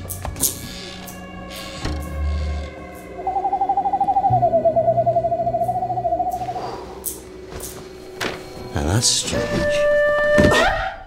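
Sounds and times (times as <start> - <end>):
low sustained music score: 0.0 - 10.3
trilling owl call: 2.8 - 7.2.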